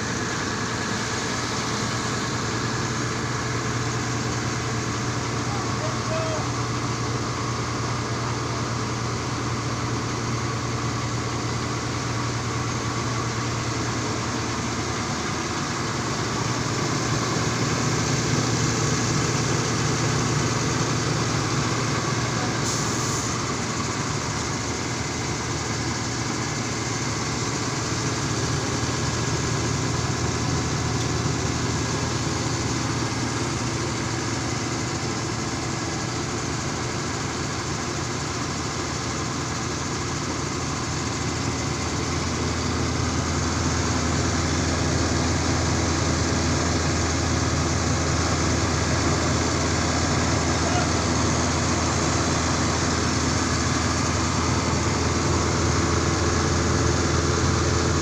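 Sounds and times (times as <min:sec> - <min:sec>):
truck engine idling: 0:00.0 - 0:58.0.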